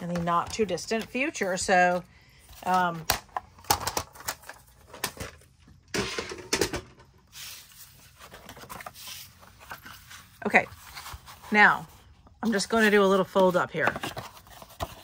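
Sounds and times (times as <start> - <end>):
paper rustling and scraping: 7.2 - 15.0.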